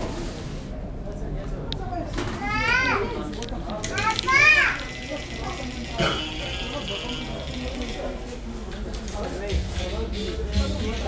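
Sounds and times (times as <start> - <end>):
murmur of voices: 0.0 - 11.0.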